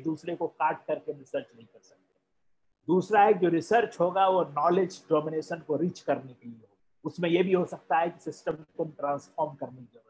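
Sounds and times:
man speaking over video call: 0.0 - 2.1, 2.8 - 10.0.

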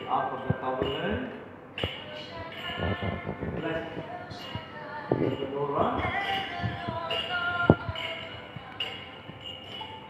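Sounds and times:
ringing chime tones: 0.0 - 10.0.

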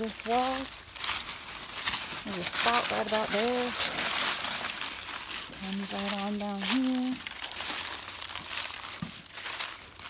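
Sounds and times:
crinkly rustling: 0.0 - 10.0
woman's drawn-out voice: 5.6 - 7.2.

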